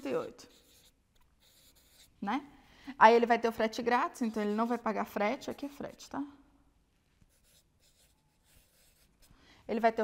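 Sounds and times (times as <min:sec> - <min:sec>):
marker writing on paper: 0:00.2 - 0:02.2, 0:04.2 - 0:05.9, 0:07.2 - 0:09.3.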